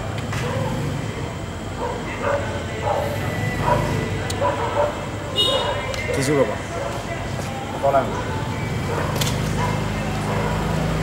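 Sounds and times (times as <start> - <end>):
dog barking: 0.4 - 0.8, 1.8 - 7.1, 8.1 - 11.0.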